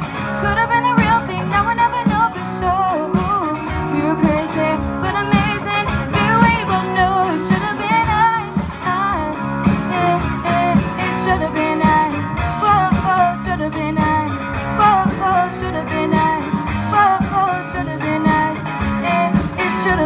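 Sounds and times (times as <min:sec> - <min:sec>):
rock band playing: 0:00.0 - 0:20.0
woman singing: 0:00.2 - 0:20.0.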